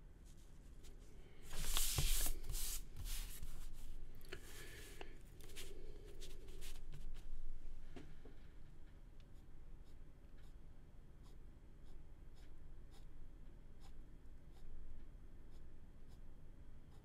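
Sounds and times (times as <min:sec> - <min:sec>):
ballpoint pen scratching on paper: 0:11.2 - 0:13.1, 0:13.8 - 0:14.7.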